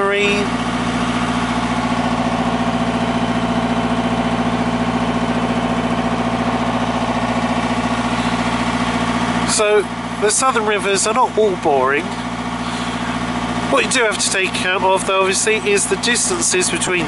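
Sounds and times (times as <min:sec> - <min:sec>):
boat diesel engine running: 0:00.0 - 0:17.0.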